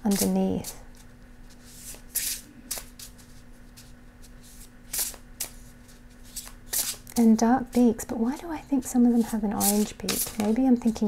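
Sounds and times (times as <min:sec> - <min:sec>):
faint steady hum: 0:00.0 - 0:11.0
cards shuffling swishes: 0:00.1 - 0:07.1, 0:09.2 - 0:11.0.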